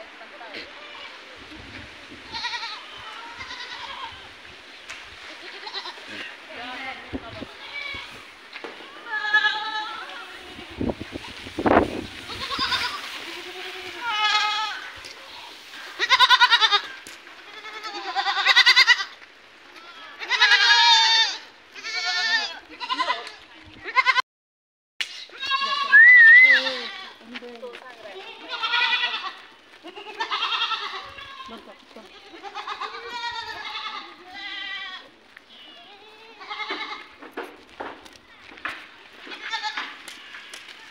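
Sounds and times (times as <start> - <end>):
goats bleating: 0.5 - 1.3, 2.2 - 4.4, 5.2 - 11.3, 12.1 - 24.2, 25.2 - 37.2, 38.2 - 40.9.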